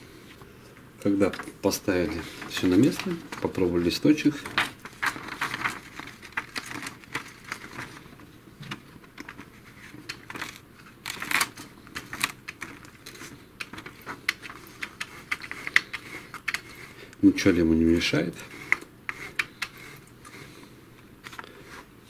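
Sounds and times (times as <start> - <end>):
paper rustling: 1.1 - 22.0.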